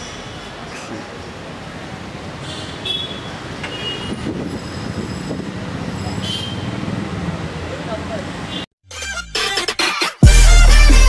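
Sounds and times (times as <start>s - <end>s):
street traffic rumble: 0.0s - 8.7s.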